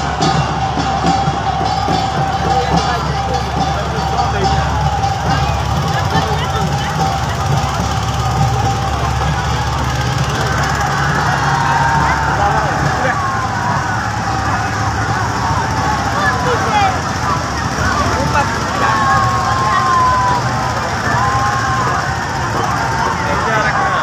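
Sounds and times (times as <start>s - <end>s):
boat engine running low: 0.0s - 24.0s
crowd shouting: 0.0s - 24.0s.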